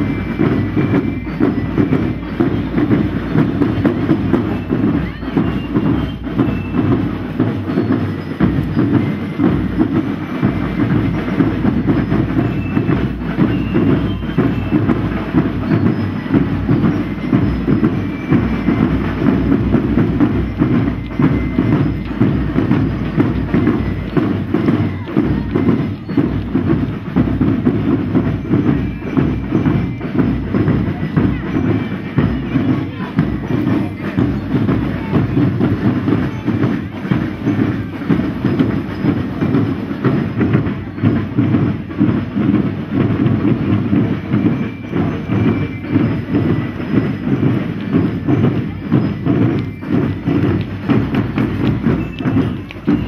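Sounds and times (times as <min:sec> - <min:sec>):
marching band drums: 0:00.0 - 0:53.0.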